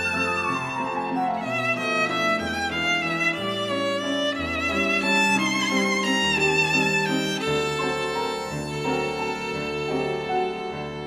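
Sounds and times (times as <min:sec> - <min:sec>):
piano accompaniment: 0:00.0 - 0:11.0
violin melody: 0:00.0 - 0:11.0.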